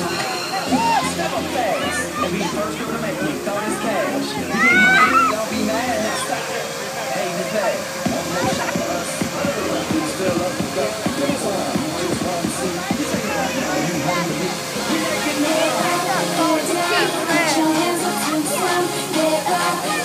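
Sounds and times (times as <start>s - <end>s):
background music: 0.0s - 20.0s
children's voices: 0.0s - 20.0s.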